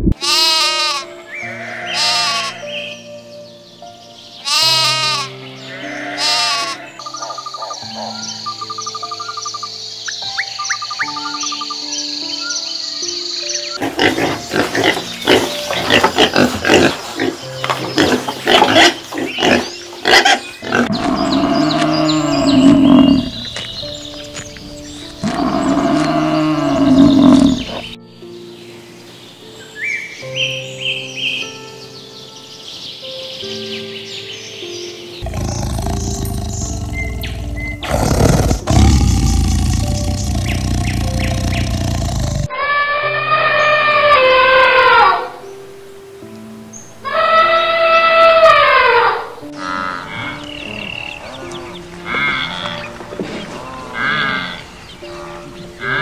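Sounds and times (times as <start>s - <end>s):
background music: 0.0s - 56.0s
pigs calling: 1.6s - 2.7s, 4.5s - 8.2s, 13.8s - 23.7s, 25.2s - 27.9s, 35.2s - 45.2s.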